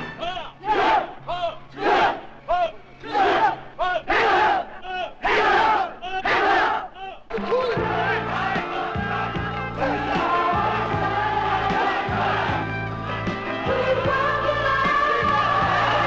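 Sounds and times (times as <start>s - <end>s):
group shouting in unison: 0.6s - 1.2s, 1.8s - 2.2s, 3.0s - 7.0s, 7.8s - 12.7s.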